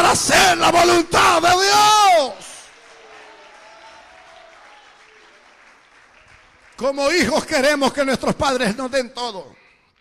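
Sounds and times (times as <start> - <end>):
faint applause: 2.4 - 7.6.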